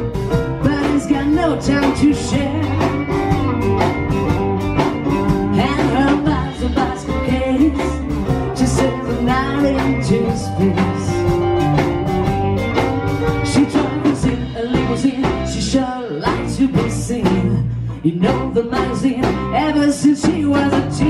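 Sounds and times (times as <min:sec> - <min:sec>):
electric keyboard: 0:00.0 - 0:15.6
drum kit: 0:00.0 - 0:21.0
electric guitar: 0:00.0 - 0:21.0.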